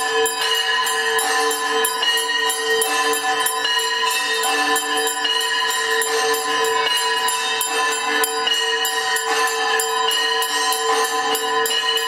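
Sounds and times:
temple bells ringing: 0.0 - 12.0.

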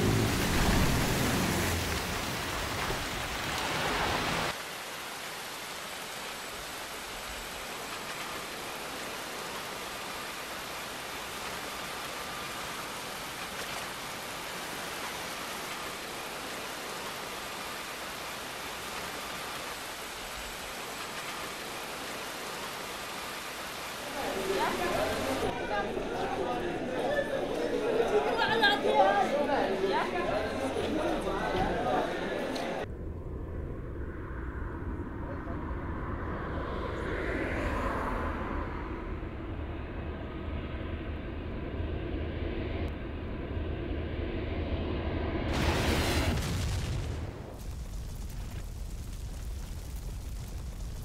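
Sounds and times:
deep rushing noise: 29.6 - 47.6.

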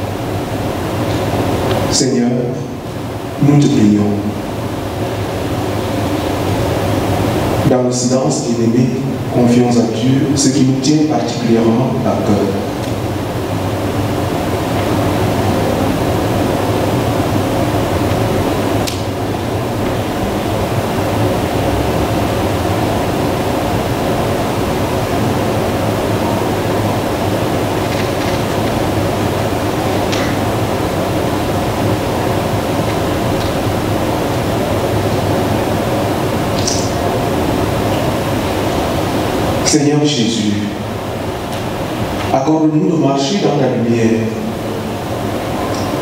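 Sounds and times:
room noise hum and hiss: 0.0 - 46.0.

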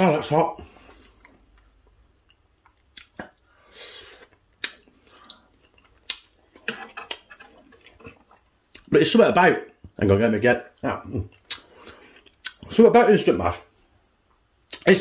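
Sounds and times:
man chewing food: 0.6 - 8.9, 10.6 - 12.7
wet mouth clicks and smacks: 1.2 - 3.5, 4.2 - 8.9, 11.3 - 12.6, 14.7 - 14.9.

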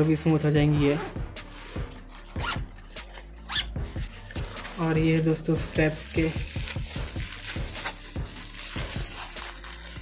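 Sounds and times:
backpack zip being pulled: 2.3 - 2.6, 3.4 - 3.7.

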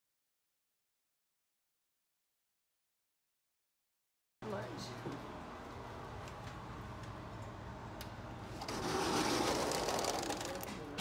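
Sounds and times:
sliding glass door rattling: 8.6 - 10.9.

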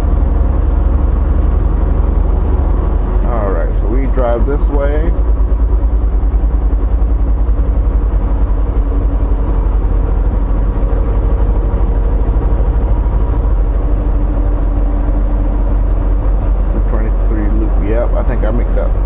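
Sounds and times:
truck engine and road noise: 0.0 - 19.0.

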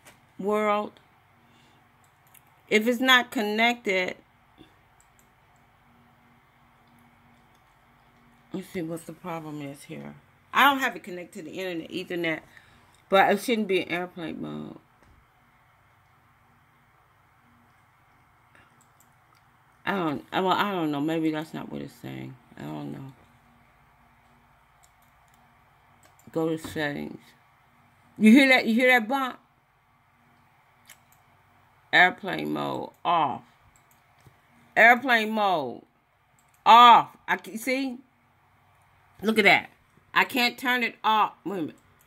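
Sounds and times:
faint steady low hum: 0.0 - 42.0.

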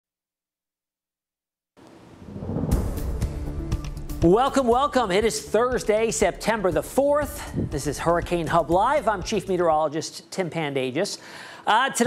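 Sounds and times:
sharp musical hits: 2.2 - 4.3
theme music with low rumble: 2.2 - 9.2.

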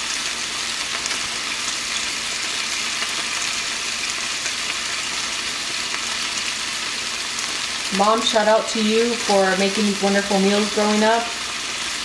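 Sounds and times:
chicken sizzling in a pan: 0.0 - 12.0.

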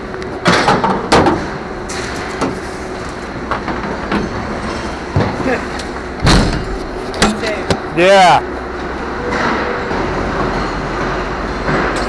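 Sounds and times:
steady background rumble: 0.0 - 12.0
junk banging and clattering: 0.4 - 12.0
heavy thud: 5.1 - 7.9.

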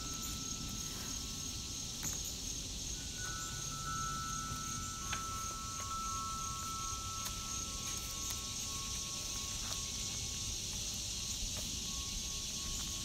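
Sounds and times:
clear chime tones: 0.0 - 13.0
crickets chirping: 0.0 - 13.0.

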